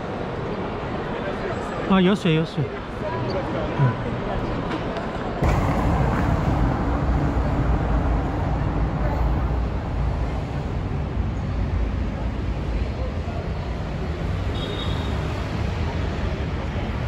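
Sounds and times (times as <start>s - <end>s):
city street traffic rumble: 0.0s - 17.0s
murmur of voices: 0.0s - 17.0s.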